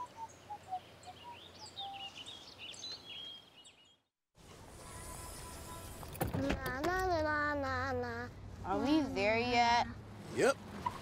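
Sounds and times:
songbirds chirping and singing: 0.0s - 4.1s
quiet woodland ambience: 0.0s - 11.0s.

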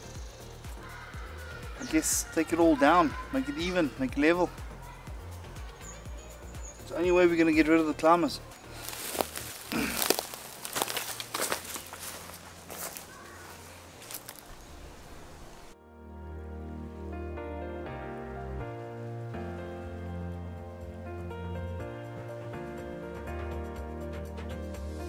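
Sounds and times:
music with sustained notes: 0.0s - 25.0s
footsteps crunching through dry leaves: 5.6s - 15.8s.

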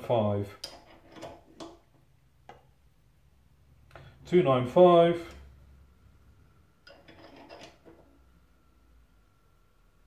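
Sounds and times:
light metallic clicks and knocks: 0.5s - 2.8s.

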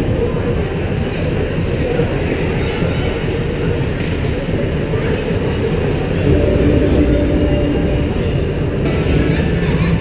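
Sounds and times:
steady low rumble: 6.1s - 10.0s.

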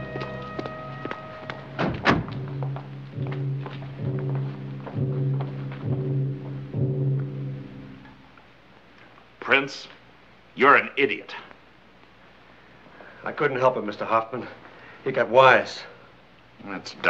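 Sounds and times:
dramatic orchestral music: 0.0s - 8.0s
heavy thuds: 1.1s - 8.2s.

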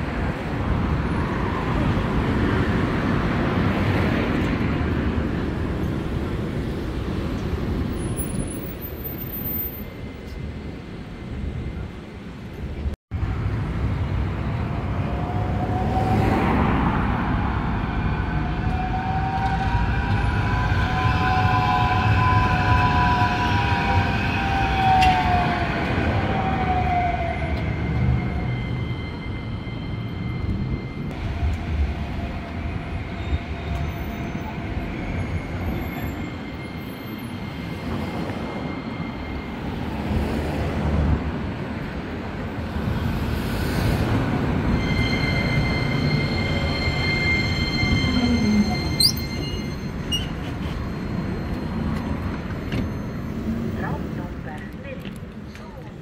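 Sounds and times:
city traffic rumble: 0.0s - 56.0s
tram motor whine: 9.8s - 54.0s.

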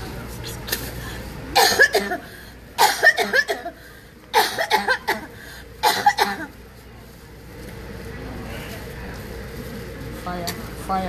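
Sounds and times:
woman coughing and retching: 1.5s - 6.6s.

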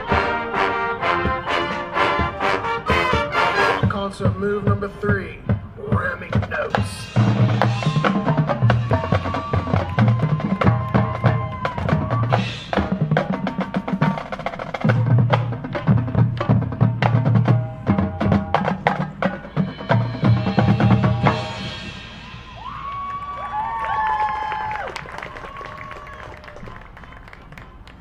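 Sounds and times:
marching band playing: 0.0s - 28.0s.

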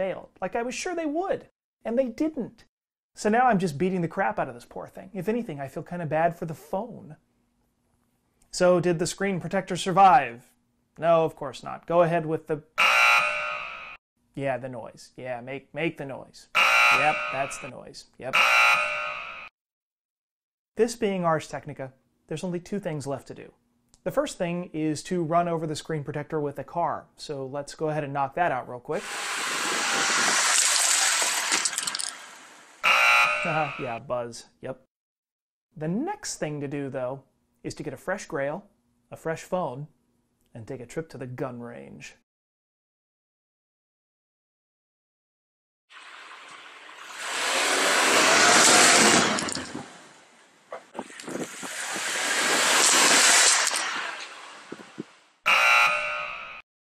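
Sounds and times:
wrong-answer buzzer: 12.8s - 14.0s, 16.6s - 17.7s, 18.3s - 19.5s, 32.8s - 33.9s, 55.5s - 56.6s
car horn honk: 16.6s - 17.6s, 18.4s - 19.2s, 32.8s - 33.8s, 55.5s - 56.4s
glass screen crackling crushed: 30.4s - 32.5s.

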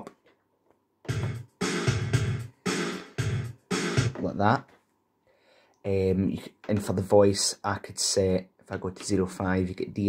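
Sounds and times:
drum-machine pop beat: 1.0s - 4.4s.

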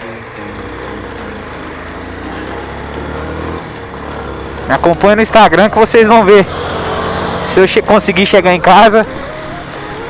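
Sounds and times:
motorcycle engine accelerating: 0.0s - 10.0s
road and wind noise: 0.0s - 10.0s.

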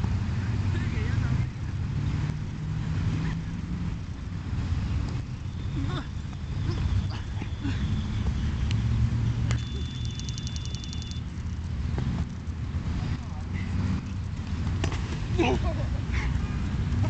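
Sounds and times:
high steady tone: 9.5s - 11.6s
fast ticking: 9.6s - 12.6s.

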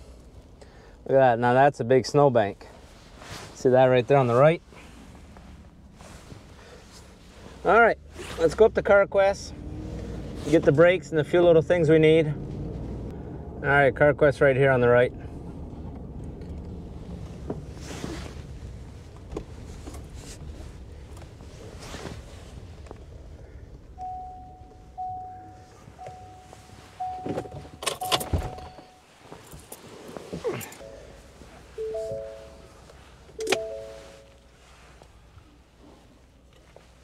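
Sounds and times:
truck cab rumble: 15.2s - 37.0s
electronic beeps: 24.0s - 29.0s, 30.8s - 32.8s, 33.4s - 34.4s
short chimes: 24.0s - 29.2s, 30.6s - 34.6s.

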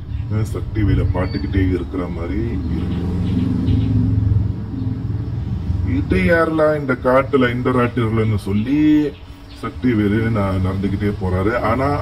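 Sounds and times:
low vehicle rumble: 0.0s - 12.0s.

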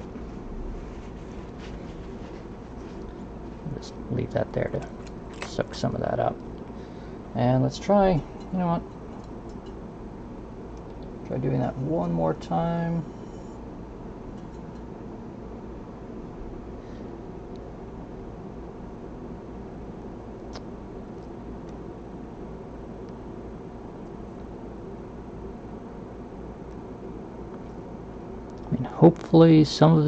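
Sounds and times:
workshop room hum: 0.0s - 30.0s.

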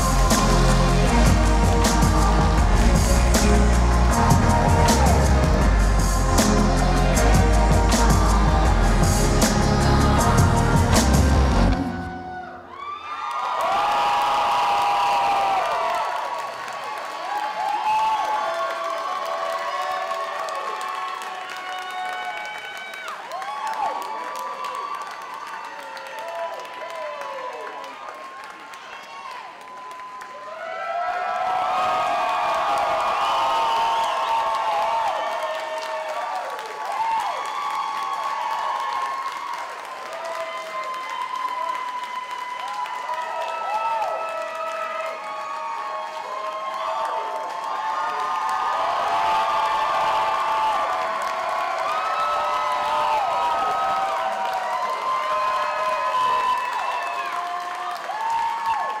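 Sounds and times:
audience applauding and cheering: 0.0s - 59.0s.

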